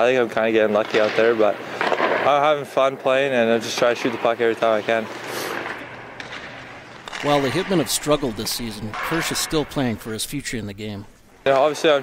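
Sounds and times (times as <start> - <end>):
ice rink background hiss: 3.4 - 12.0.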